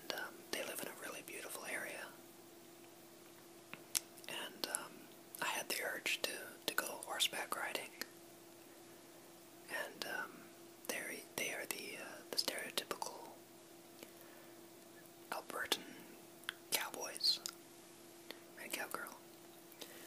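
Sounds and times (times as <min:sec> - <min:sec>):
person whispering: 0:00.0 - 0:02.2, 0:04.3 - 0:08.1, 0:09.7 - 0:13.4, 0:15.3 - 0:17.5, 0:18.6 - 0:19.2
faint steady hum: 0:00.0 - 0:20.0.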